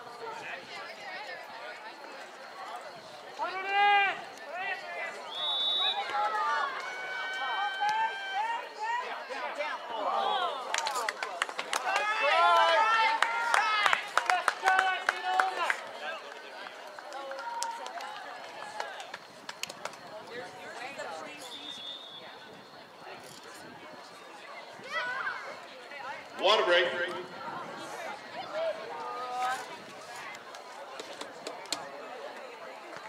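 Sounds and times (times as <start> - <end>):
crowd cheering: 3.3 - 22.4
high whistle blast: 5.3 - 6.1, 21.6 - 22.4
people clapping: 6.0 - 8.2, 10.6 - 20.4.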